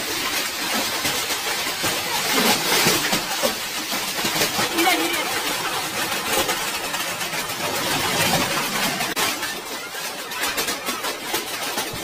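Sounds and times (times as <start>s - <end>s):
hail clattering on hard surfaces: 0.0s - 12.0s.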